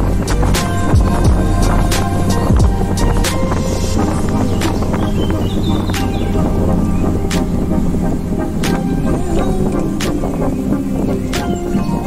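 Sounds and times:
background music with slow beat: 0.0s - 12.0s
bus engine droning: 0.0s - 12.0s.

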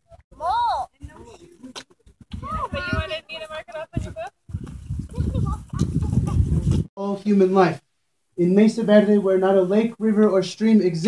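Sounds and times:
indistinct group talking: 0.4s - 4.4s.

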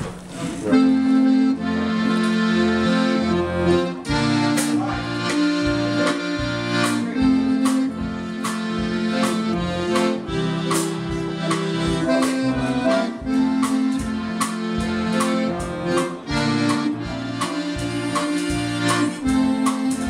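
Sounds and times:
concertina playing dance tune: 0.7s - 20.0s
sharp regular hits: 3.7s - 20.0s.

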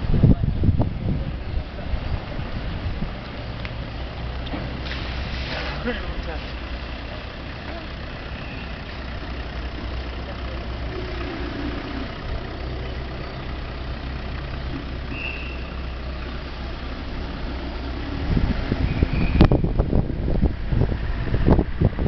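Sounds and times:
street noise: 0.0s - 22.0s
vehicle engine idling: 0.0s - 22.0s.

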